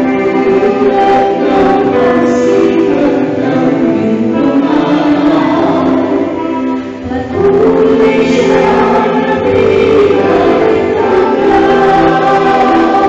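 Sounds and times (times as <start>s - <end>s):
choir singing gospel: 0.0s - 13.0s.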